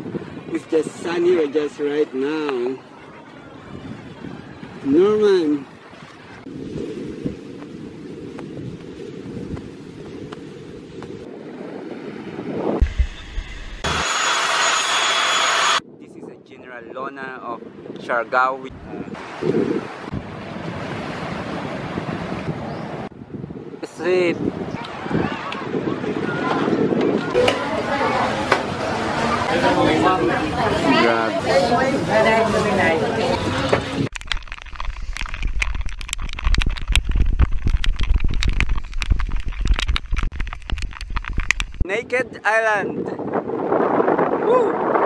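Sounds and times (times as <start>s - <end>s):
wind buffeting microphone: 0.0s - 1.8s, 2.9s - 13.9s, 15.8s - 45.0s
sea surf: 18.2s - 23.1s, 23.9s - 34.1s.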